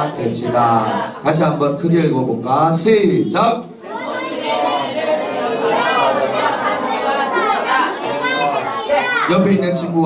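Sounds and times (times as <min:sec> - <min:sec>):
children reading aloud in unison: 0:00.0 - 0:01.2, 0:03.0 - 0:09.6.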